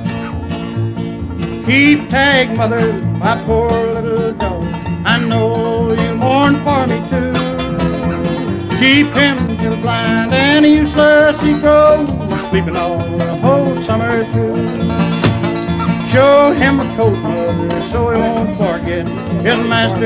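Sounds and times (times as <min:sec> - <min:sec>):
bluegrass band playing: 0:00.0 - 0:20.0.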